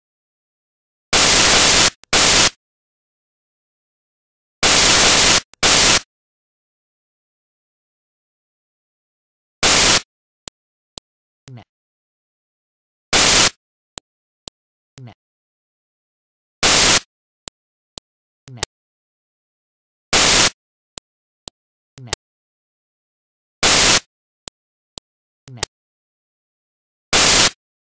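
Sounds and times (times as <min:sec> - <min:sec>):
white noise static bursts: 0:01.2 - 0:02.6, 0:04.6 - 0:06.0, 0:09.6 - 0:10.0, 0:13.2 - 0:13.6, 0:16.6 - 0:17.0, 0:20.2 - 0:20.6, 0:23.6 - 0:24.0, 0:27.2 - 0:27.6.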